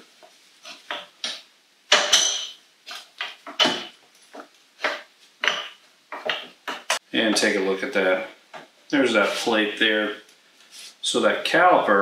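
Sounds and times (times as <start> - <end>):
metal clinks and knocks: 0.9 - 2.6, 3.2 - 4.4.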